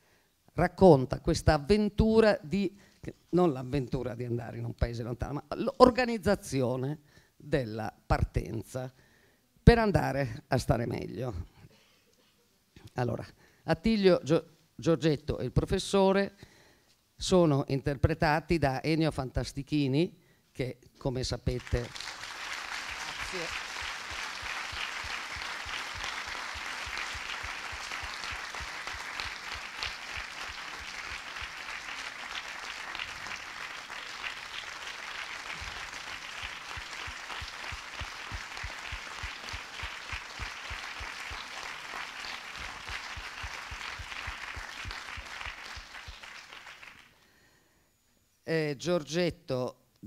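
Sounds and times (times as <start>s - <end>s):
audience applauding: 21.5s - 47.2s.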